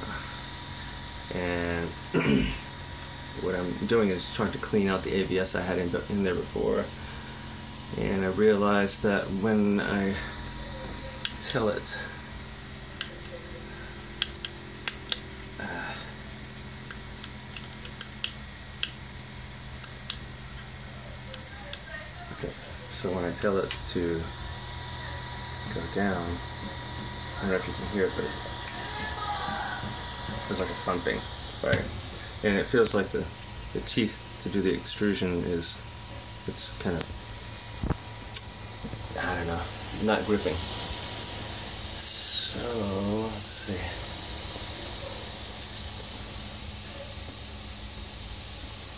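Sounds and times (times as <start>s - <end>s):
extruder feeding filament: 0.0s - 48.9s
steady low hum: 0.0s - 48.9s
sharp click: 16.8s - 19.0s, 19.8s - 20.2s, 37.8s - 39.1s.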